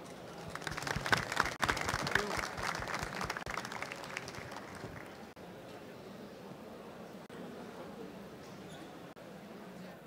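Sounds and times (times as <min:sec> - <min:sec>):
audience applauding: 0:00.5 - 0:05.3.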